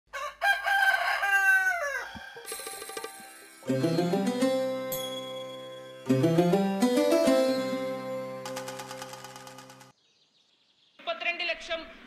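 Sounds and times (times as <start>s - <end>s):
rooster crowing: 0.1s - 2.4s.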